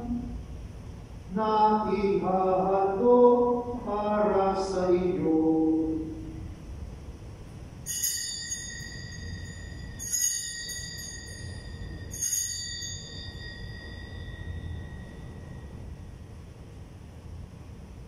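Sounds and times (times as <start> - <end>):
altar bells ringing: 7.8 - 16.4.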